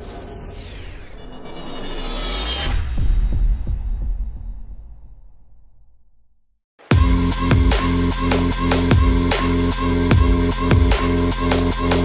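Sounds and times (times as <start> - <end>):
rising sweep: 0.0 - 3.4
deep bass boom: 2.7 - 7.8.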